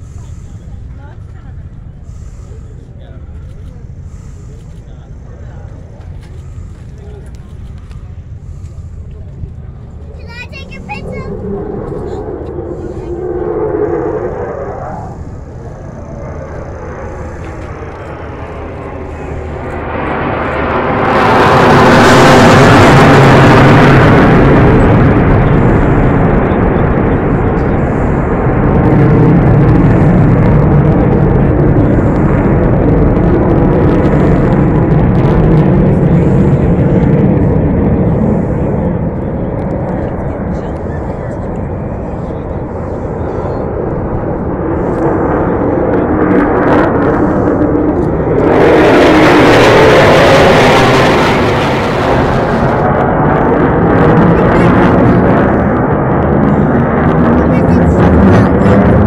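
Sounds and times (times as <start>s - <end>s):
jet aircraft flying past: 0.0s - 59.0s.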